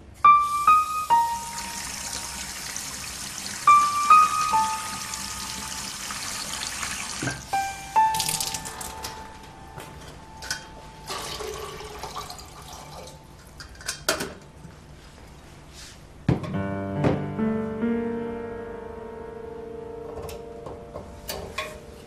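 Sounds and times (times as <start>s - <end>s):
sparse piano notes: 0.0s - 13.6s, 16.4s - 22.0s
water running from tap: 1.3s - 7.5s, 8.1s - 8.9s, 11.1s - 13.2s.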